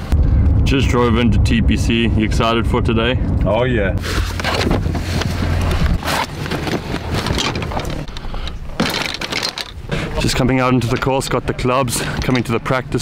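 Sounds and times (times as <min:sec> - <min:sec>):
clicks knocks and rustling: 0:08.8 - 0:09.8.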